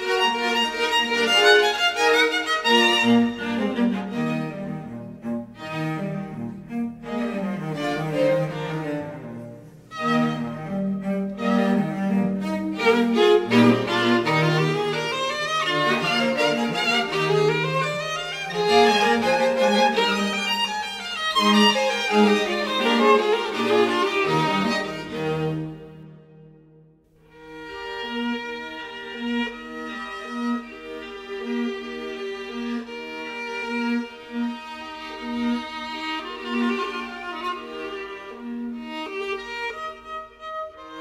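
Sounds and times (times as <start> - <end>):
solo violin melody: 0.0 - 26.6, 27.2 - 41.0.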